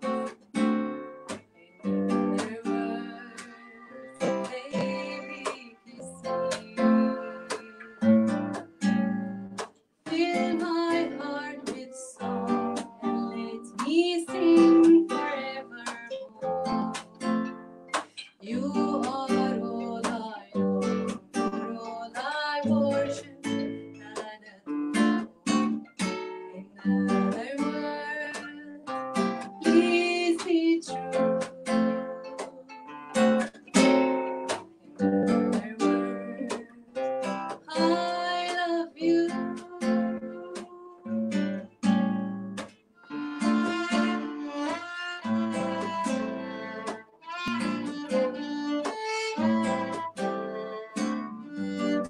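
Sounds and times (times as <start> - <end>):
plucked acoustic guitar: 0.0 - 52.0
bowed violin: 1.6 - 9.2, 43.0 - 52.0
woman singing: 1.7 - 8.6, 10.1 - 17.1, 18.4 - 32.9, 35.0 - 41.4.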